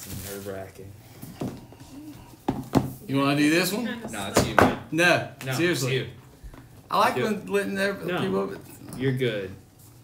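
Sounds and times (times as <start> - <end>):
knocks on a tabletop: 2.4 - 3.0, 4.3 - 4.9.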